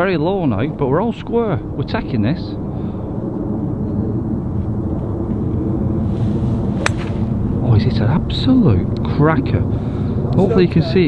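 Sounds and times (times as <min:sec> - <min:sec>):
steady low rumble: 0:00.0 - 0:11.0
golf club striking ball: 0:06.8 - 0:07.4.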